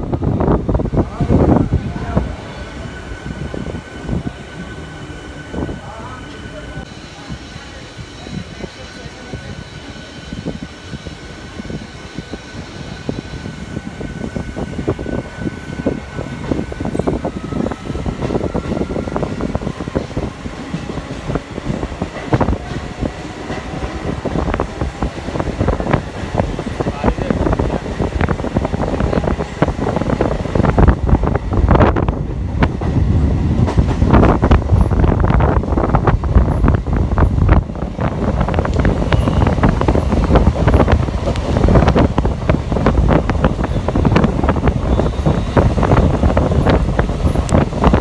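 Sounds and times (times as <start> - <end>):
train wheels rumbling on track: 0.0 - 48.0.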